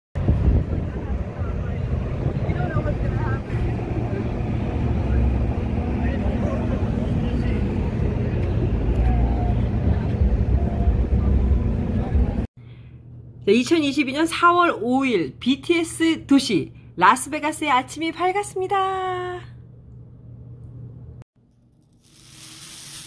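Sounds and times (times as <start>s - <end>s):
diesel generator droning: 0.2s - 12.5s.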